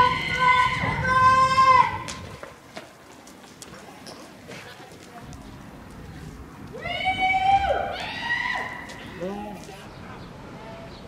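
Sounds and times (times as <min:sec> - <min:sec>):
people shouting long calls: 0:00.0 - 0:02.1, 0:06.7 - 0:09.6.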